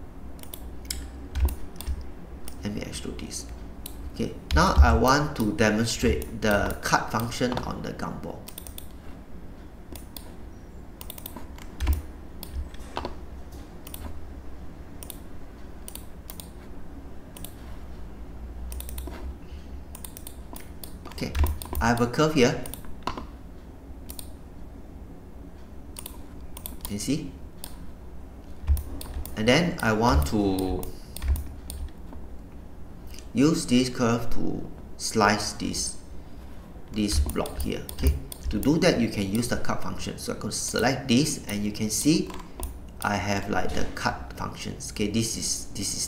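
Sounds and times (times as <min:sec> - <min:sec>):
low steady hum: 0:00.0 - 0:46.0
computer keyboard keystrokes: 0:00.4 - 0:02.6, 0:08.4 - 0:09.0, 0:09.9 - 0:10.3, 0:11.0 - 0:13.2, 0:13.8 - 0:14.2, 0:15.0 - 0:15.2, 0:15.8 - 0:16.6, 0:18.7 - 0:19.2, 0:19.9 - 0:23.3, 0:24.1 - 0:24.4, 0:26.0 - 0:27.0, 0:28.6 - 0:32.0, 0:37.0 - 0:39.5
mouse clicks: 0:00.4 - 0:02.6, 0:08.5 - 0:09.0, 0:09.9 - 0:10.3, 0:11.0 - 0:13.2, 0:13.8 - 0:14.2, 0:15.0 - 0:15.2, 0:15.8 - 0:16.6, 0:17.4 - 0:17.6, 0:18.7 - 0:19.3, 0:19.9 - 0:23.3, 0:24.1 - 0:24.4, 0:26.0 - 0:26.9, 0:37.1 - 0:39.4.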